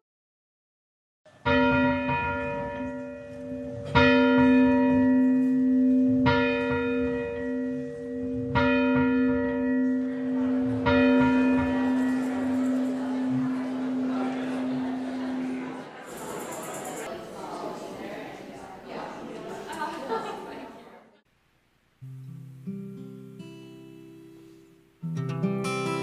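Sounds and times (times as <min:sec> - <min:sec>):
church bell tolling: 0:01.3 - 0:17.1.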